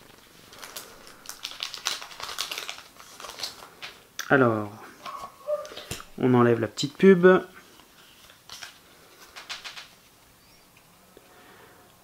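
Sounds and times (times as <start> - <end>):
foil wrapper crinkling and tearing: 0.0 - 4.0, 7.8 - 9.9.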